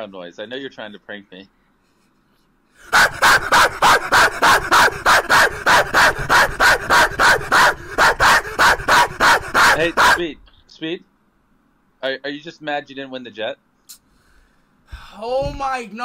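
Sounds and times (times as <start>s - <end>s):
man barking like a dog: 2.9s - 10.4s.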